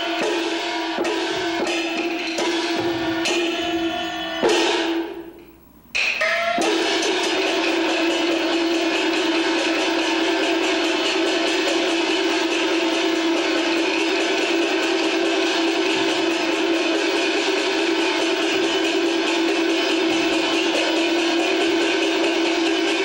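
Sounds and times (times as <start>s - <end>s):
fast percussion: 0.0s - 23.0s
opera band accompaniment: 0.0s - 23.0s.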